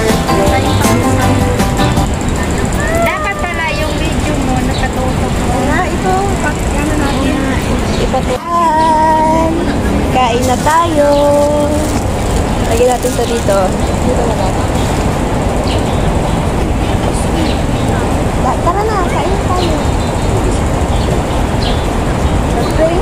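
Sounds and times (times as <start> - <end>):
people's voices singing: 0.0 - 14.8
low hum of city traffic: 0.0 - 23.0.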